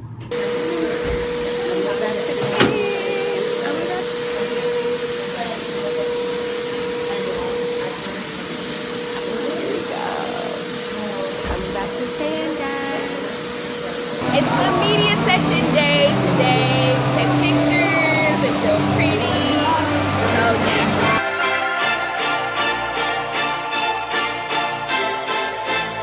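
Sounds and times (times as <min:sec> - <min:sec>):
blower whining and hissing: 0:00.0 - 0:21.2.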